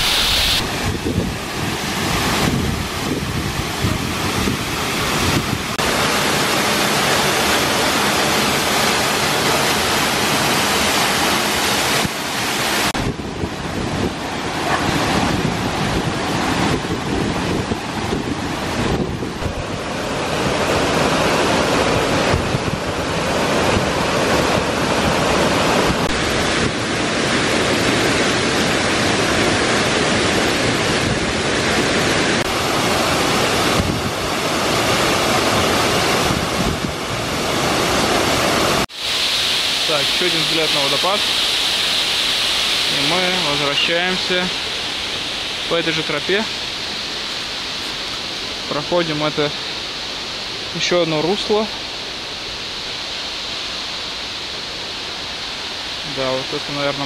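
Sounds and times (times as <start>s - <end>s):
waterfall rushing water: 0.0s - 57.0s.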